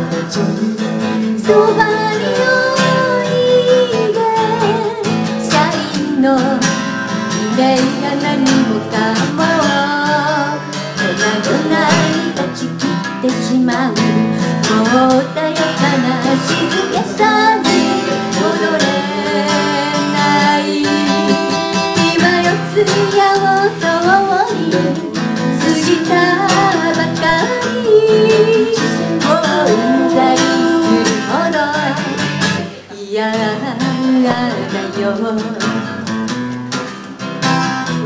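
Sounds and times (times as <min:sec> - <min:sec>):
person singing: 0:00.0 - 0:36.2
strummed acoustic guitar: 0:00.0 - 0:38.0.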